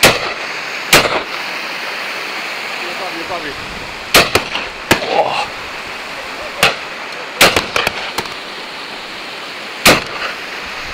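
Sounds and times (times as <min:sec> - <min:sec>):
faint distant gunshot cracks: 0:00.0 - 0:01.3, 0:04.1 - 0:05.2, 0:07.4 - 0:08.3, 0:09.8 - 0:10.3
loud shotgun shots: 0:00.0 - 0:01.3, 0:04.1 - 0:05.2, 0:07.4 - 0:08.3, 0:09.8 - 0:10.4.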